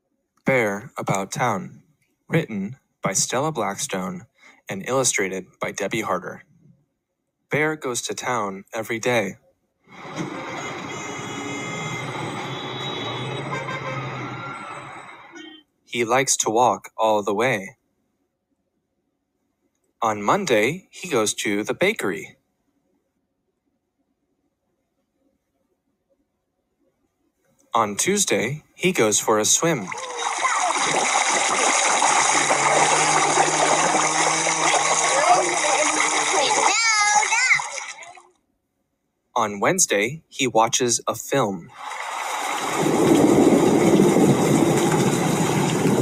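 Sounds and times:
street traffic din: 9.9s - 15.6s
splashing churning water: 29.8s - 38.3s, 41.7s - 46.0s.

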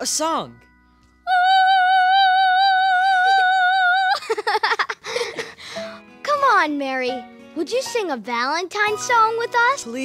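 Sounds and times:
person singing operatic note: 1.3s - 4.1s.

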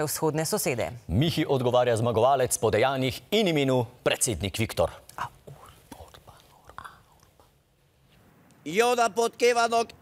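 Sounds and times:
faint mouth sounds and breath: 5.0s - 8.2s.

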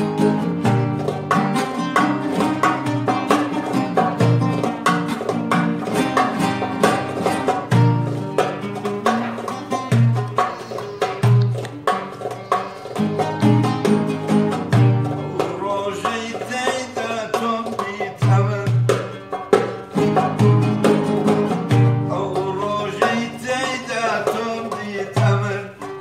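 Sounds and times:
deep hand drum beats: 0.0s - 25.6s
guitar and oud playing: 0.0s - 26.0s
man singing: 15.1s - 19.2s, 21.9s - 26.0s.

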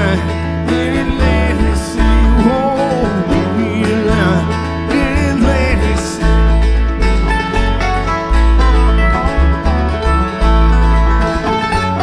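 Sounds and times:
acoustic guitar picking: 0.0s - 12.0s
banjo picking: 0.0s - 12.0s
dobro picking: 0.0s - 12.0s
mandolin picking: 0.0s - 12.0s
upright bass notes: 0.0s - 12.0s.

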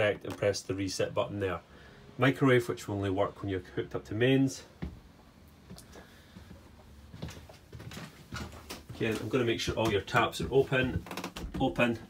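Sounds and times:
footsteps on caravan floor: 5.9s - 12.0s.

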